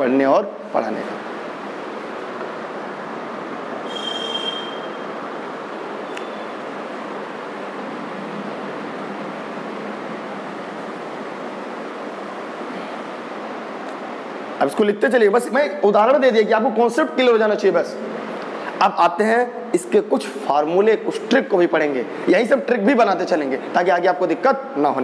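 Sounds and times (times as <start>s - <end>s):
steady even noise: 0.0s - 15.8s
brief high squeal: 3.8s - 5.2s.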